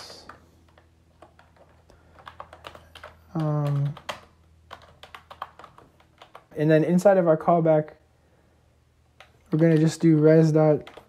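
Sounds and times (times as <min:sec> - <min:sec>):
typing on computer keyboard: 0:00.0 - 0:06.5, 0:09.2 - 0:11.0.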